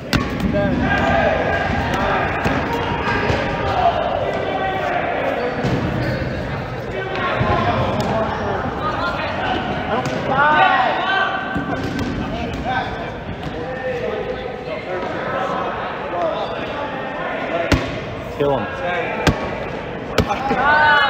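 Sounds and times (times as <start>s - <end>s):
players calling out: 0.0s - 21.0s
sneakers squeaking on floor: 2.0s - 7.5s.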